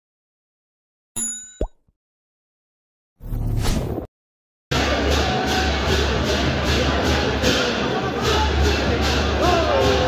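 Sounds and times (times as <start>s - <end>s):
bell-like notification ding: 1.2s - 1.8s.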